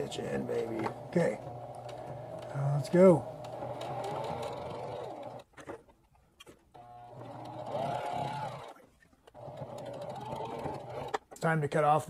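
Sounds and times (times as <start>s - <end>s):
electric sewing machine stitching: 0.0s - 5.8s, 6.7s - 11.3s.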